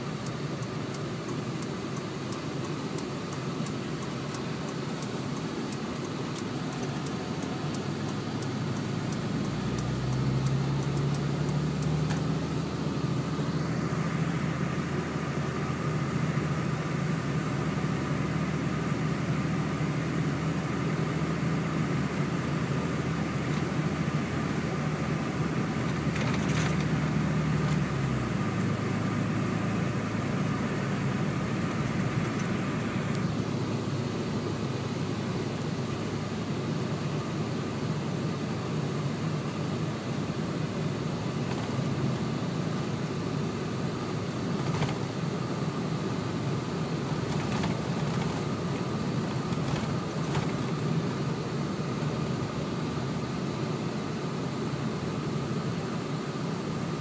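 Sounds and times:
car engine: 0:00.0 - 0:57.0
road noise: 0:00.0 - 0:57.0.

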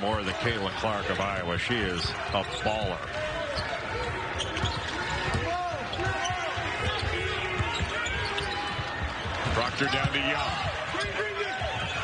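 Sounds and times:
arena crowd murmur: 0:00.0 - 0:12.0
sneakers squeaking: 0:01.0 - 0:12.0.

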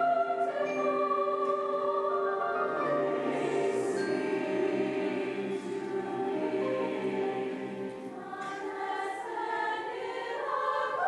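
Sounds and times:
large choir singing: 0:00.0 - 0:11.0.

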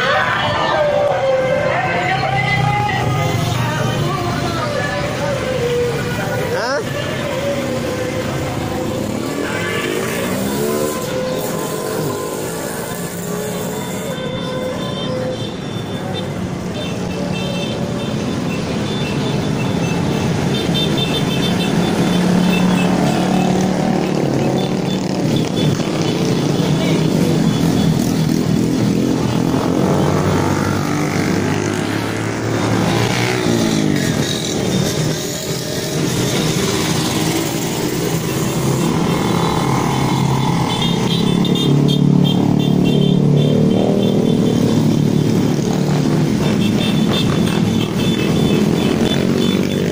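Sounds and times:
motorcycles passing and revving: 0:00.0 - 0:49.9.

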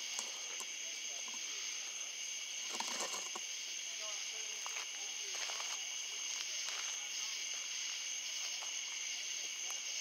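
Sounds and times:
night insects chorus: 0:00.0 - 0:10.0.

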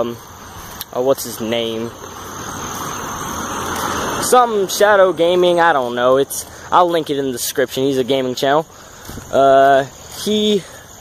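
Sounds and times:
vehicle passing close by: 0:00.0 - 0:10.1.

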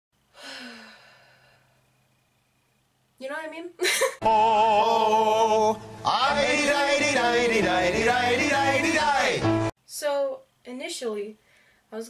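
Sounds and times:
woman sighing: 0:00.4 - 0:01.7.

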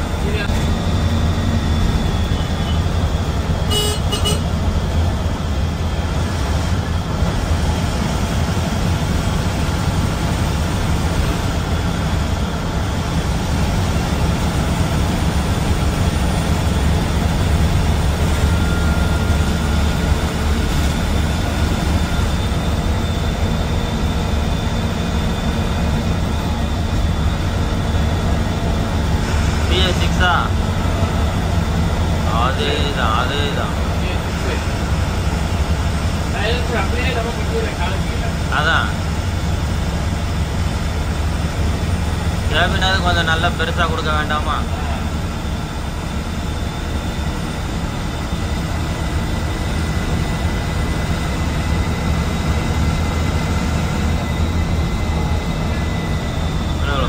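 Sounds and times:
bus engine drone: 0:00.0 - 0:57.0
road noise: 0:00.0 - 0:57.0
short horn toot: 0:03.7 - 0:04.5.

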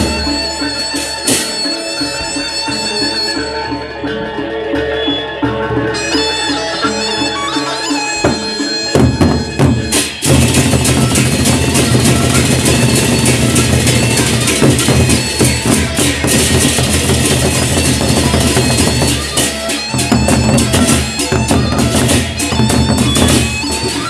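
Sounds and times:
hand cymbals clashing: 0:06.0 - 0:24.0
barrel drums beaten: 0:08.2 - 0:24.0.

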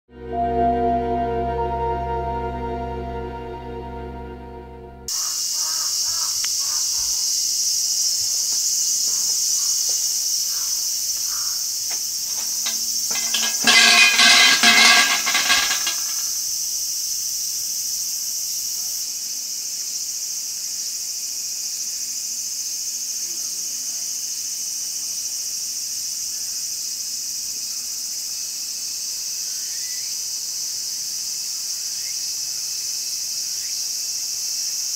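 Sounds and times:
insects droning: 0:05.1 - 0:34.9.

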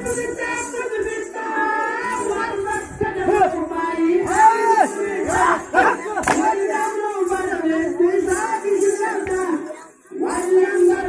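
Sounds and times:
men shouting and chanting: 0:00.0 - 0:11.0.

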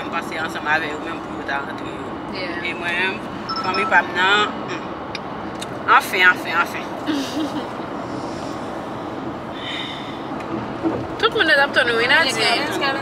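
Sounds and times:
road noise inside car: 0:00.0 - 0:13.0
women's voices: 0:11.2 - 0:13.0.

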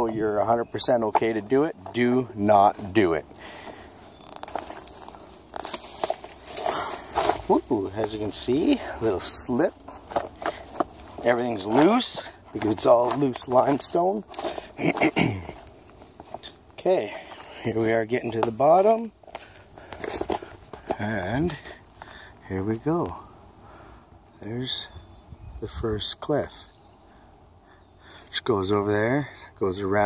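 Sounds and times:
footsteps crunching on rubble: 0:00.0 - 0:23.0.

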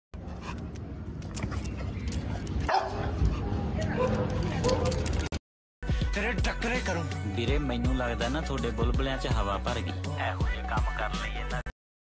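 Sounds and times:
outdoor background noise: 0:00.2 - 0:05.4
dog barking: 0:02.6 - 0:03.2.

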